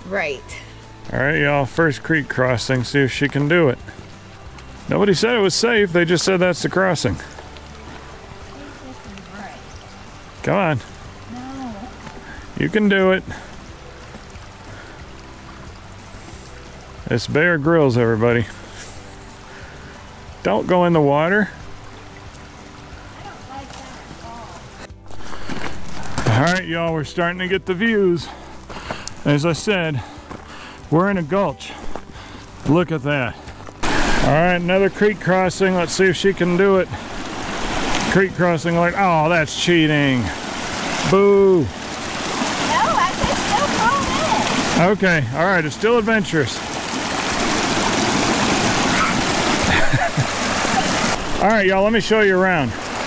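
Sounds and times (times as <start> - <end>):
creek trickling: 0.0 - 53.0
soft voices: 11.3 - 12.0
outdoor rustle: 21.7 - 26.6.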